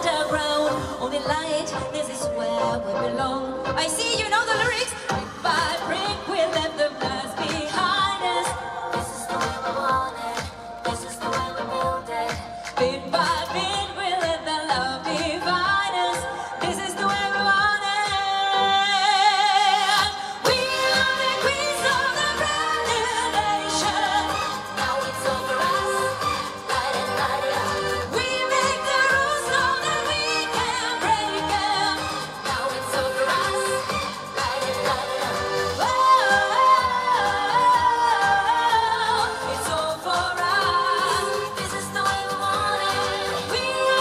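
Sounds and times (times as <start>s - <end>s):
pop backing track over loudspeakers: 0.0s - 44.0s
woman singing: 0.0s - 44.0s.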